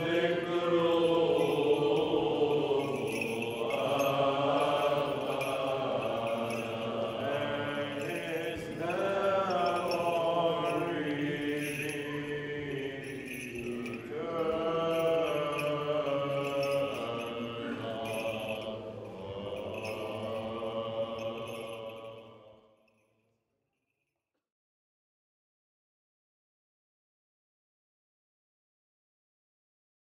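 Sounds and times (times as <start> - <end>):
voices chanting: 0.0 - 22.5.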